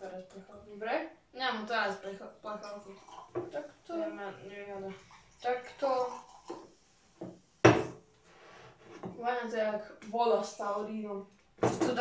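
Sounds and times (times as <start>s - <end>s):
drink can knocking on table: 7.2s - 8.0s.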